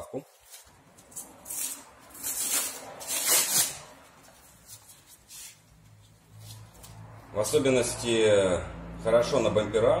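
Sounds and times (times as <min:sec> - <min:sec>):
hook-and-loop rasping rips: 0:00.4 - 0:07.1.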